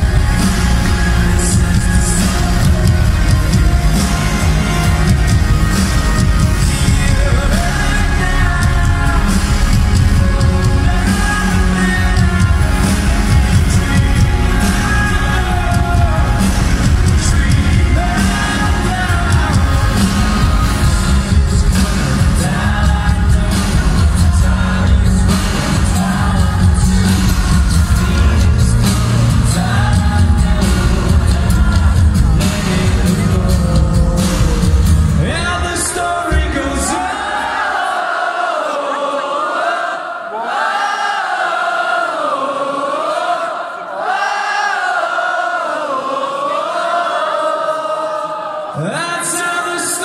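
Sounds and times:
heavy bass: 0.0 - 37.1
rock band playing loudly: 0.0 - 37.3
person singing: 0.0 - 37.8
pounding drums: 0.0 - 37.9.

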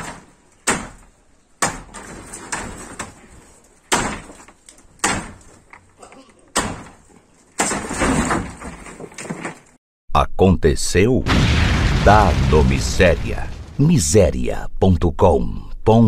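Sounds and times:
corrugated roofing sheets crashing: 0.0 - 5.7, 6.6 - 9.8.

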